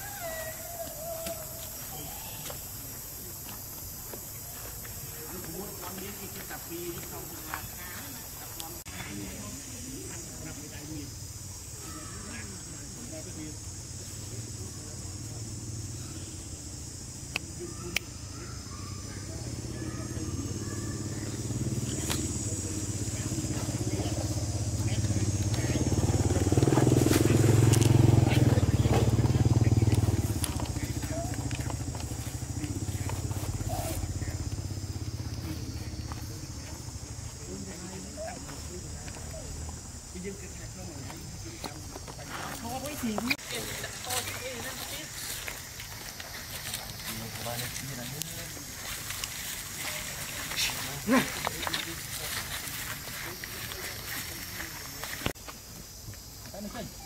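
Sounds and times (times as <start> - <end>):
steady high hiss: 0.0 - 57.0
engine pulsing hum: 18.6 - 41.3.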